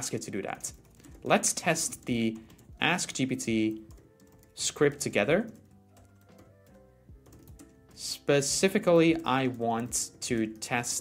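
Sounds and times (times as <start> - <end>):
faint keyboard typing: 0.0 - 11.0
quiet background music: 0.0 - 11.0.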